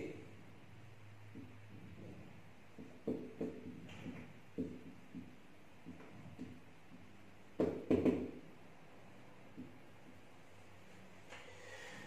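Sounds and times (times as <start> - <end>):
marker tip tapping whiteboard: 2.8 - 7.0.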